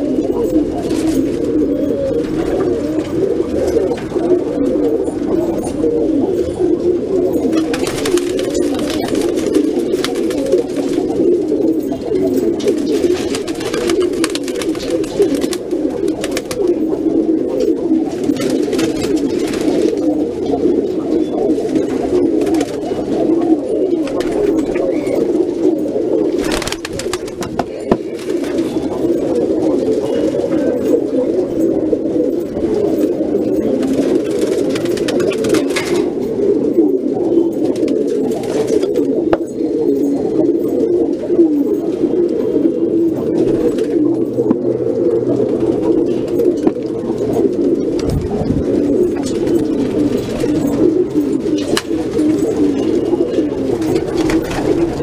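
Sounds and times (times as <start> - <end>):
pigeons cooing: 0.0 - 55.0.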